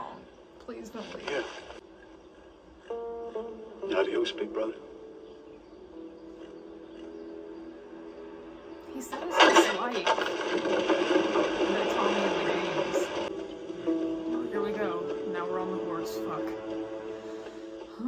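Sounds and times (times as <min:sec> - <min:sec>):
faint dialogue: 0:00.0 - 0:18.0
drama soundtrack music: 0:00.1 - 0:18.0.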